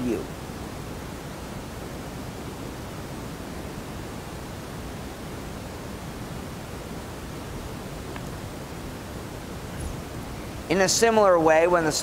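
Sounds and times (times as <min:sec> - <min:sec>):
room tone hiss: 0:00.0 - 0:12.0.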